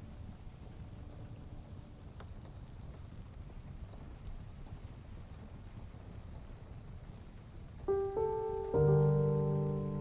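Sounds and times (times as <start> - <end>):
low steady rushing noise: 7.9 - 10.0
piano note: 7.9 - 10.0.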